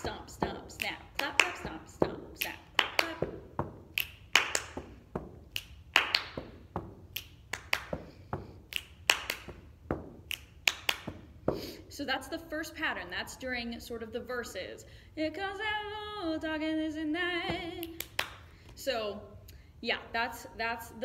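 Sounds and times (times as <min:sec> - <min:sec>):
foot stomps: 0:00.0 - 0:11.8, 0:17.4 - 0:18.8
hand claps: 0:03.9 - 0:09.6, 0:10.2 - 0:11.3, 0:17.8 - 0:18.5
finger snaps: 0:05.5 - 0:06.2, 0:07.1 - 0:07.9, 0:08.7 - 0:09.4, 0:10.3 - 0:11.0.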